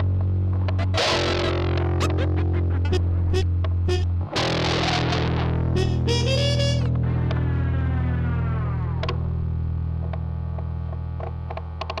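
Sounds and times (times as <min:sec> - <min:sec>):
low mains hum: 0:00.0 - 0:12.0.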